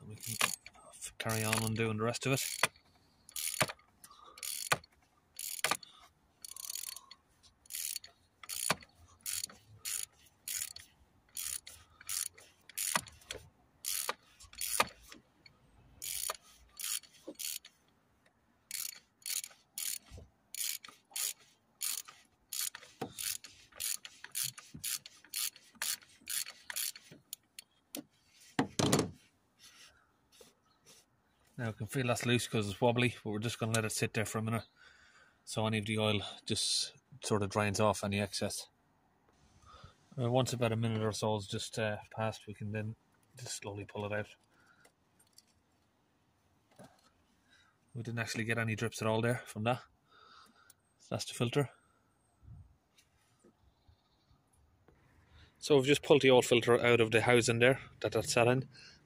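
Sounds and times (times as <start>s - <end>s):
ratchet wrench clicking: 0.2s - 15.2s, 16.0s - 17.8s, 18.7s - 27.7s.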